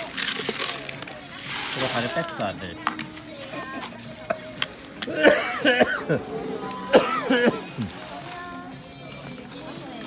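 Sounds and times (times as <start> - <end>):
music playing: 0.0 - 10.0.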